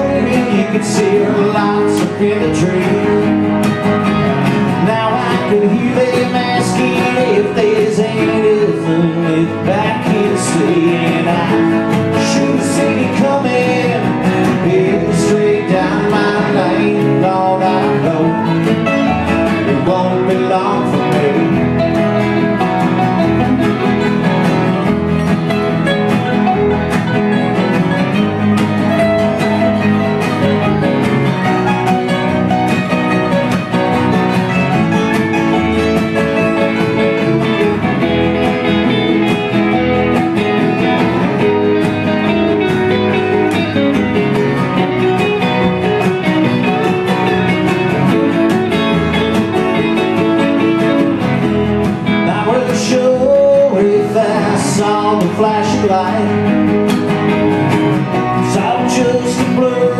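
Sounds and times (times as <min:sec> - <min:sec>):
string band playing: 0:00.0 - 0:59.9.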